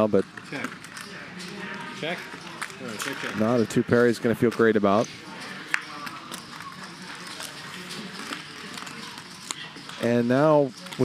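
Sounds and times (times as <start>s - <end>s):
faint background chatter: 0.0s - 11.0s.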